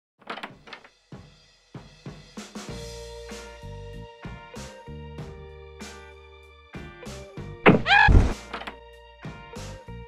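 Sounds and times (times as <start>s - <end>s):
background music with drums: 0.9s - 6.2s, 6.8s - 10.0s.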